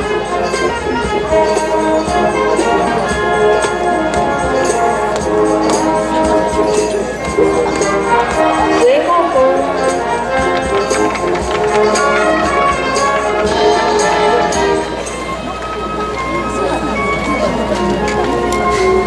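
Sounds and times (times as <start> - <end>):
brass band playing a march: 0.0 - 19.0
steady drum beat: 0.0 - 19.0.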